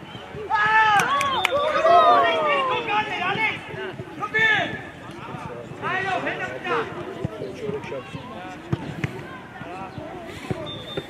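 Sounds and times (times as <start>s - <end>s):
faint shouting: 0.5s - 3.3s.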